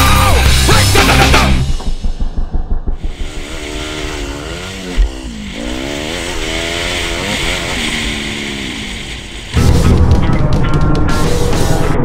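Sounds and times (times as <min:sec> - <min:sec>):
motorcycle engine revving: 0:00.2 - 0:11.8.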